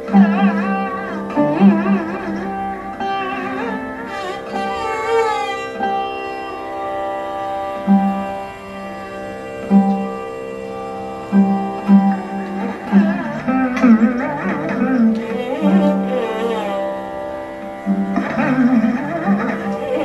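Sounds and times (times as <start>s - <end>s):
bowed violin: 0.0s - 20.0s
slide lute plucked notes: 0.0s - 20.0s
steady drone: 0.0s - 20.0s.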